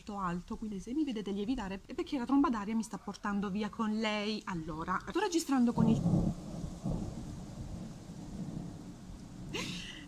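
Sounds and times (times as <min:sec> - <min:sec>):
thunder rumbling: 0:04.6 - 0:10.0.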